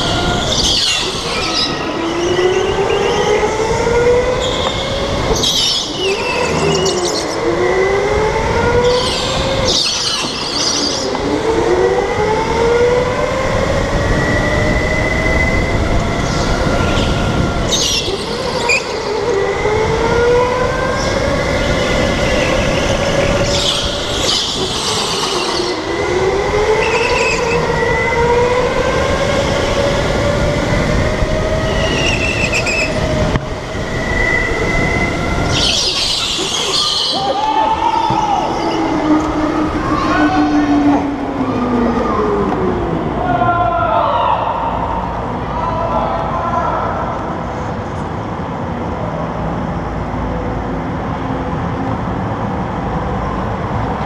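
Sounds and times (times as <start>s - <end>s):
electric go-kart motor whine: 0.0s - 43.0s.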